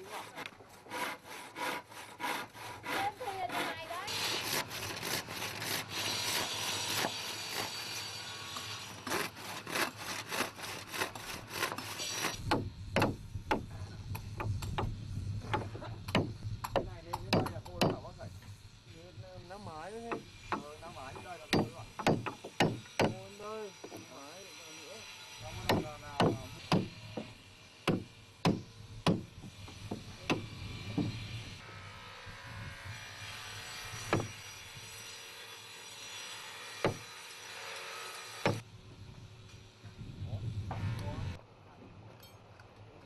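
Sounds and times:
hammer striking chisel into wood: 0:12.5 - 0:13.7, 0:15.5 - 0:18.0, 0:21.5 - 0:23.2, 0:25.6 - 0:27.3, 0:27.9 - 0:29.3, 0:36.8 - 0:37.1.

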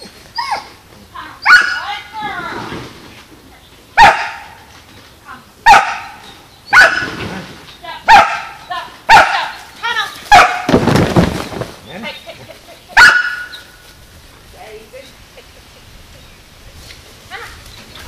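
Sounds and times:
dog barking: 0:04.0 - 0:04.6, 0:05.7 - 0:07.1, 0:08.1 - 0:09.5, 0:10.3 - 0:10.7, 0:13.0 - 0:13.6.

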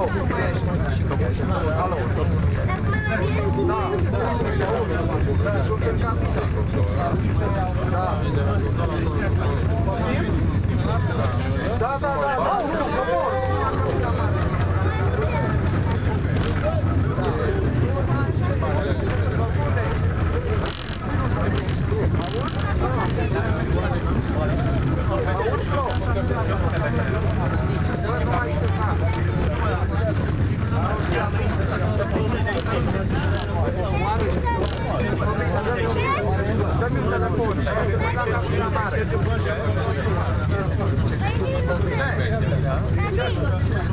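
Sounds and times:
babble of conversation: 0:00.0 - 0:43.9.

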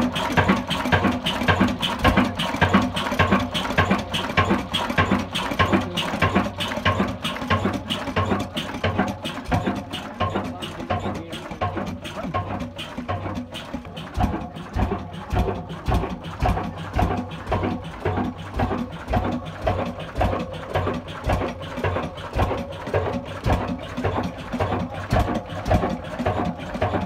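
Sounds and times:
diesel engine thudding: 0:00.0 - 0:27.0.

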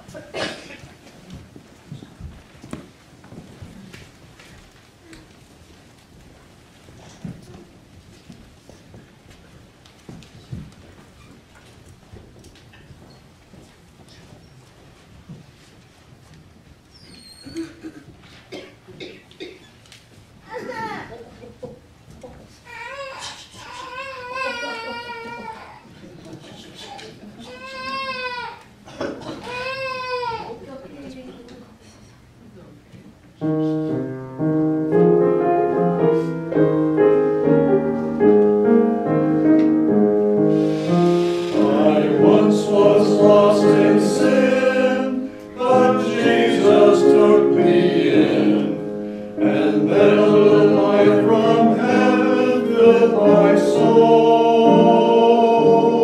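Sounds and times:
church choir singing: 0:40.5 - 0:56.0.

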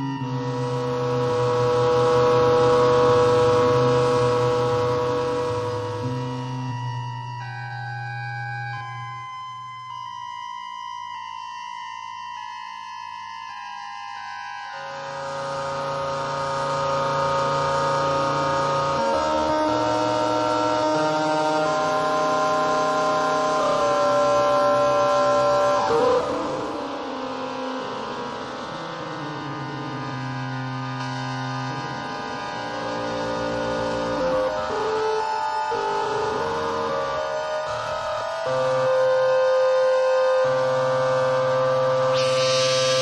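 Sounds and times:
atonal electronic music: 0:00.0 - 0:10.2, 0:14.7 - 0:43.0.

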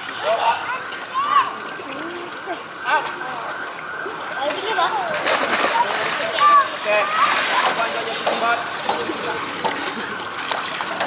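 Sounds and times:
children calling and shouting: 0:00.0 - 0:03.3, 0:04.0 - 0:10.3
water splashing in pool: 0:00.0 - 0:11.0.

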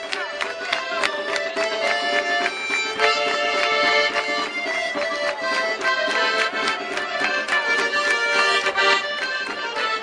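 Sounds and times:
button accordion melody: 0:00.0 - 0:10.0.

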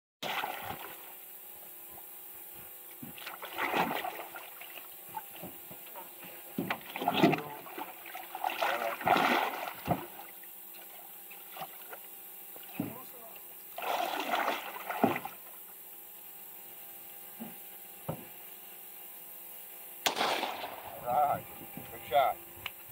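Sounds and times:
water splashing: 0:00.2 - 0:01.2, 0:03.0 - 0:05.5, 0:06.7 - 0:12.0, 0:13.8 - 0:15.5.

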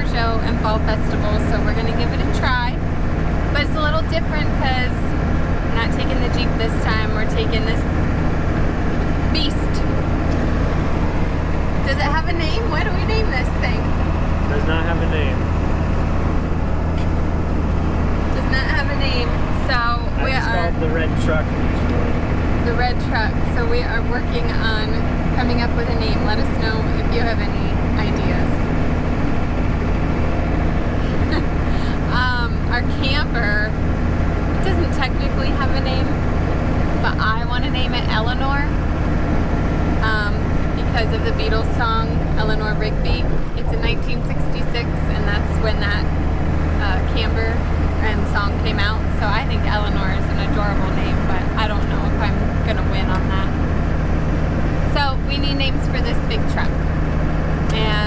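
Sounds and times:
diesel engine drone: 0:00.0 - 0:58.0
road noise: 0:00.0 - 0:58.0.

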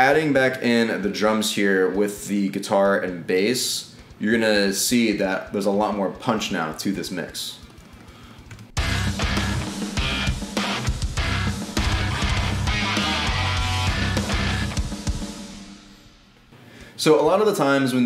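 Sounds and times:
distorted rhythm guitars: 0:00.0 - 0:15.6
bass guitar: 0:08.8 - 0:15.2
punchy kick drum: 0:08.8 - 0:15.9.

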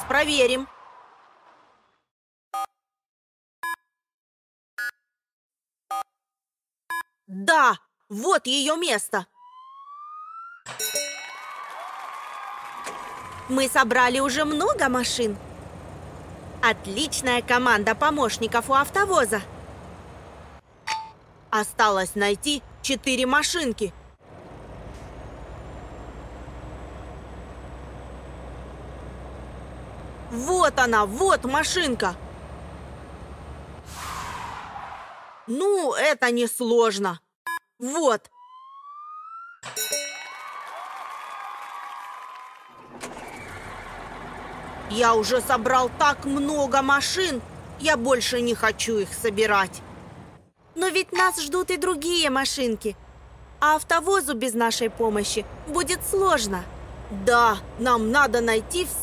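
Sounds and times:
cartoon truck engine rumble: 0:12.8 - 0:34.6, 0:42.7 - 0:59.0.

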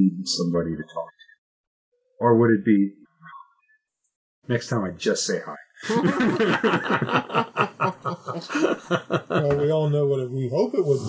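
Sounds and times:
people laughing: 0:04.8 - 0:11.0.

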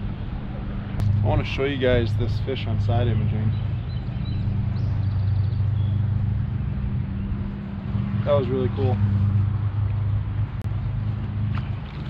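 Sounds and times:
boat motor humming: 0:00.0 - 0:12.0.

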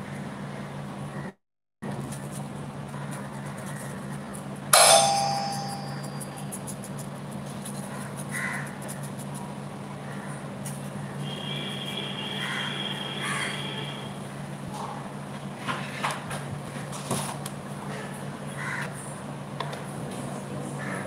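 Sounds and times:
steady low hum: 0:00.0 - 0:21.0
sharp ringing clang: 0:04.8 - 0:06.4.

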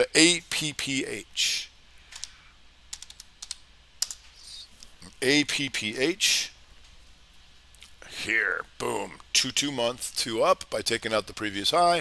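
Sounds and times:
computer keyboard keystrokes: 0:02.1 - 0:04.2.

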